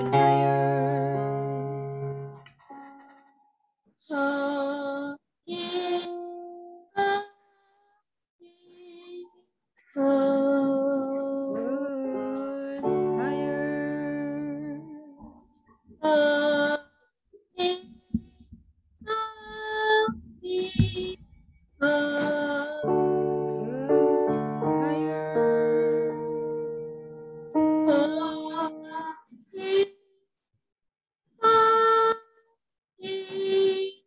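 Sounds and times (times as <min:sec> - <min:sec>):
child singing vocal exercises: 0:00.0 - 0:01.7, 0:04.0 - 0:07.7, 0:08.4 - 0:17.0, 0:17.6 - 0:18.1, 0:19.1 - 0:21.2, 0:21.8 - 0:26.8, 0:27.5 - 0:30.0, 0:31.4 - 0:32.3, 0:33.0 - 0:34.0
keyboard chords: 0:00.0 - 0:03.4, 0:05.7 - 0:07.0, 0:11.5 - 0:15.1, 0:22.7 - 0:29.2.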